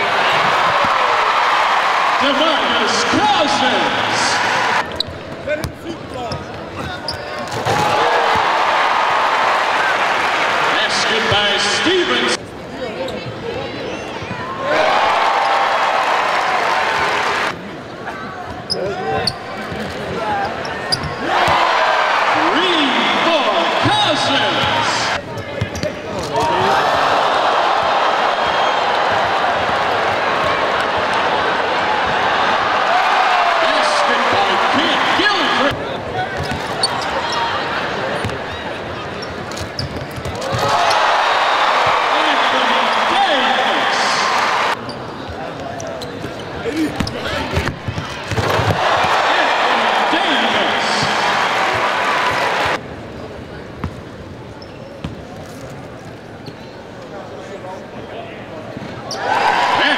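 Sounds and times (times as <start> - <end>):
arena crowd cheering: 0.0 - 5.0, 7.4 - 12.4, 14.3 - 17.6, 21.2 - 25.2, 26.3 - 35.8, 40.4 - 44.8, 46.7 - 52.8, 59.1 - 59.9
basketball bouncing on court: 46.2 - 49.2.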